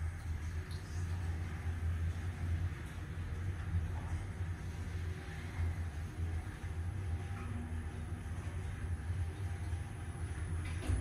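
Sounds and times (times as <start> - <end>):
elevator ride rumble: 0.0 - 11.0.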